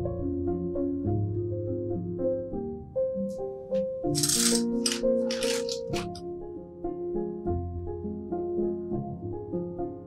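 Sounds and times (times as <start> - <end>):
soft instrumental music: 0.0 - 10.0
dry spaghetti clattering: 4.2 - 6.2.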